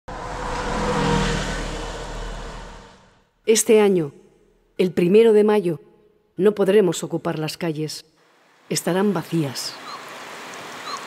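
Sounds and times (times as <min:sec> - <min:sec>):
bus driving past: 0:00.0 - 0:03.3.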